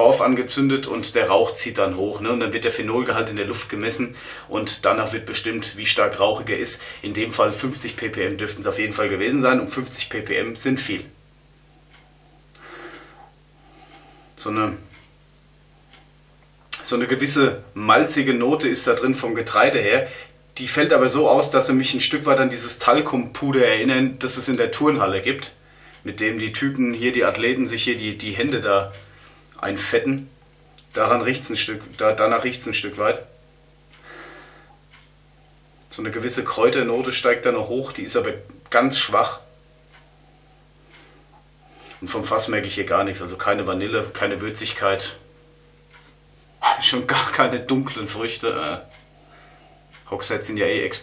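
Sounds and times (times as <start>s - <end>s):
low steady hum: 0.0s - 51.0s
faint breath: 4.2s - 4.5s, 12.6s - 14.4s, 25.6s - 26.0s, 34.0s - 34.8s, 49.2s - 49.9s.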